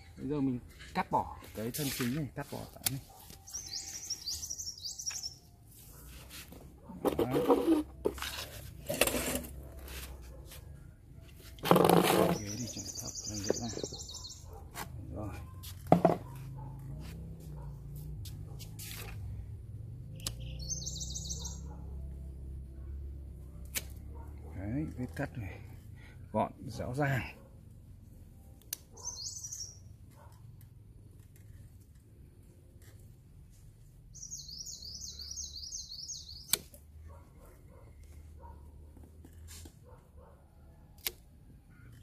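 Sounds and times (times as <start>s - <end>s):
songbird chirping: 0.0s - 7.8s, 11.2s - 16.4s, 20.0s - 23.5s, 28.4s - 30.2s, 34.1s - 38.6s.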